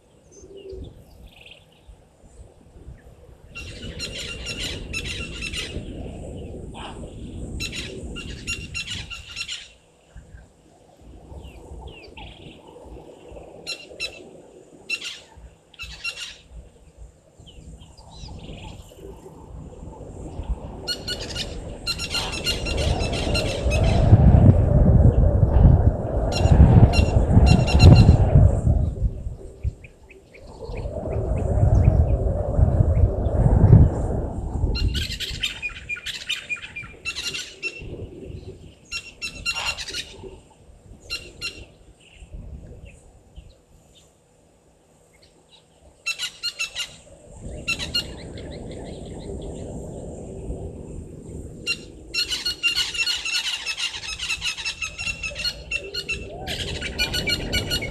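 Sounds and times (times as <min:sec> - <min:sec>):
wild birds squawking and chirping: 0:03.5 - 0:10.0, 0:13.2 - 0:16.6, 0:20.8 - 0:24.2, 0:34.8 - 0:42.2, 0:45.1 - 0:49.6, 0:51.6 - 0:57.9.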